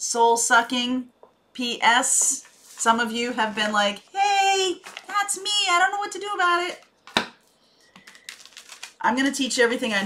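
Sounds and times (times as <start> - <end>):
cards clicking while shuffled: 8.0 - 9.0.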